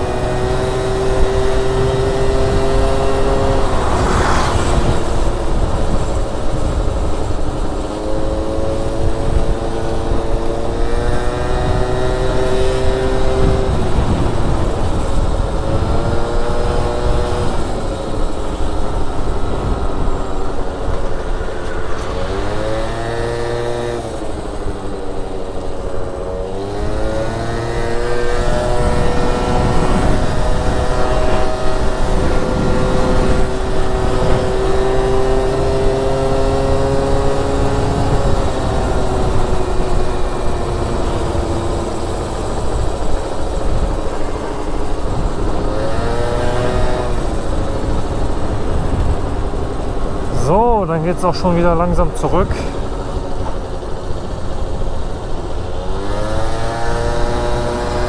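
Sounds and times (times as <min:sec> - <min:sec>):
scooter engine buzzing: 0:00.0 - 0:58.0
wind and road noise: 0:00.0 - 0:58.0.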